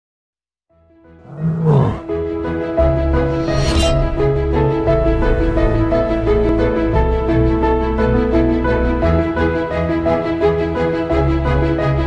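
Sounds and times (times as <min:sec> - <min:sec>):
bear roar: 0:01.2 - 0:02.1
rising music: 0:02.8 - 0:09.2.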